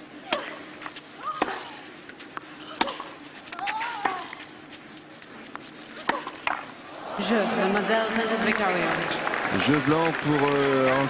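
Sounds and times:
tennis ball struck by rackets: 6.0s - 6.7s
crowd applause and cheering: 6.9s - 11.0s.

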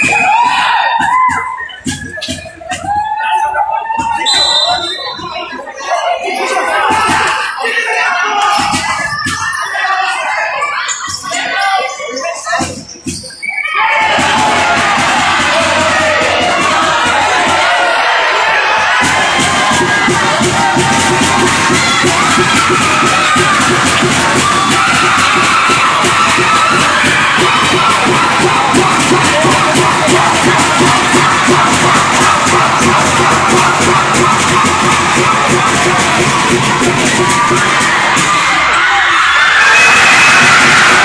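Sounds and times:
crowd cheering and chanting: 0.0s - 41.0s
steady rhythmic beat: 14.0s - 39.0s.

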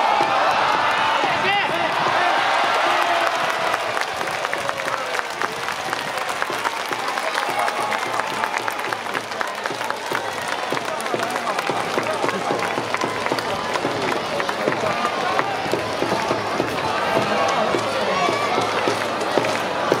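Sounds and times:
crowd talking and cheering: 0.0s - 20.0s
clapping: 2.6s - 20.0s.

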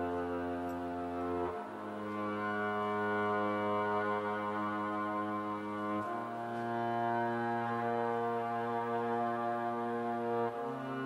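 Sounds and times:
indie band playing sustained chord: 0.0s - 11.0s.

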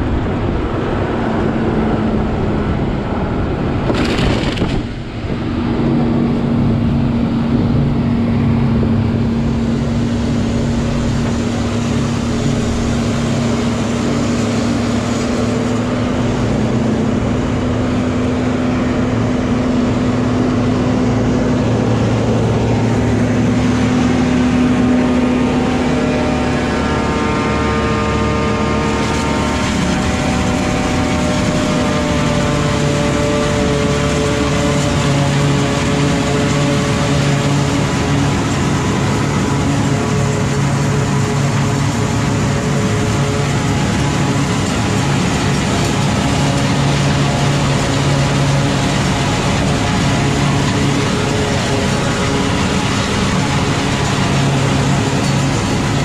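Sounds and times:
forage harvester engine drone: 0.0s - 56.0s.

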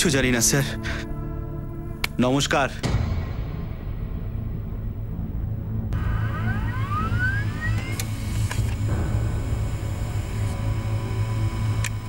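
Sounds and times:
low steady drone: 0.0s - 12.0s
printer feeding whine: 6.0s - 12.0s.

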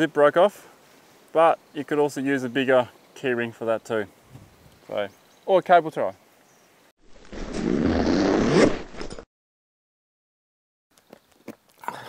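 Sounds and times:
zipper being pulled: 7.2s - 9.3s.

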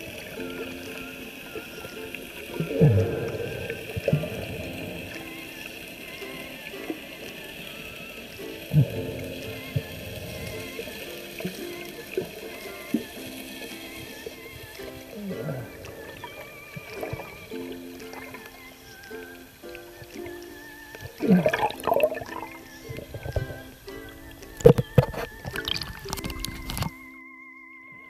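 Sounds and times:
water moving underwater: 0.0s - 27.0s.

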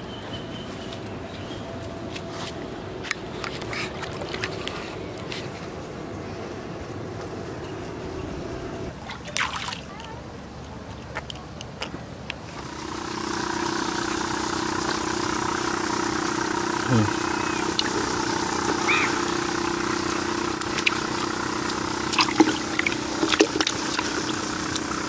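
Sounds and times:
air pump humming: 12.4s - 25.0s
water bubbling: 17.1s - 25.0s.

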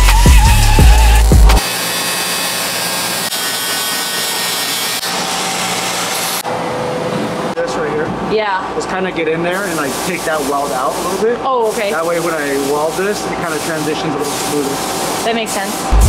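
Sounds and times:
music with heavy bass beat: 0.0s - 1.6s
angle grinder grinding metal: 0.6s - 6.5s.

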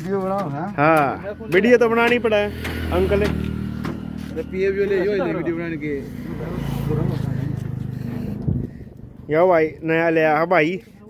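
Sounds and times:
diesel engine idling: 1.3s - 10.0s
man talking: 4.3s - 7.6s, 9.3s - 10.9s.

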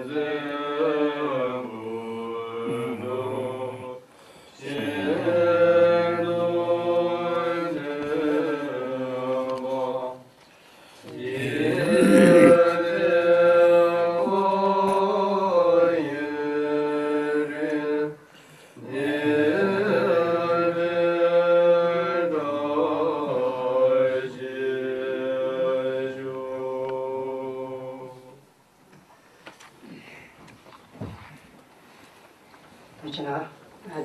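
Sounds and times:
monks chanting: 0.0s - 4.0s, 4.6s - 10.2s, 11.0s - 18.2s, 18.8s - 28.4s.

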